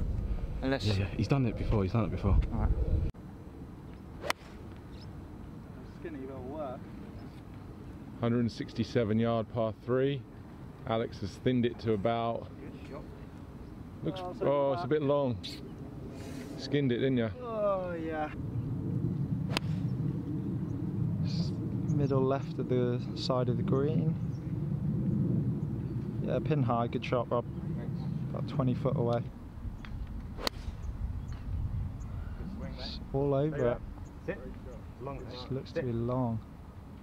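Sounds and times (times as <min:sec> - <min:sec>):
steady low rumble: 0:00.0 - 0:06.1, 0:18.2 - 0:35.1
golf club striking ball: 0:04.2 - 0:05.0, 0:19.5 - 0:19.8, 0:29.8 - 0:30.9.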